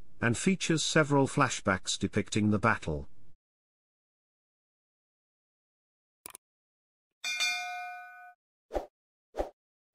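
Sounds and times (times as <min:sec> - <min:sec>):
notification bell ding: 0:07.2 - 0:08.4.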